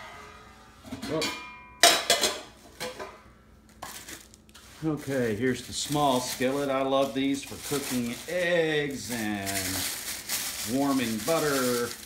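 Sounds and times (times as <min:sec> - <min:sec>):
metal pan clinking: 0:00.0 - 0:03.1
packaging rustling: 0:03.7 - 0:12.0
man speaking: 0:04.8 - 0:09.8, 0:10.6 - 0:12.0.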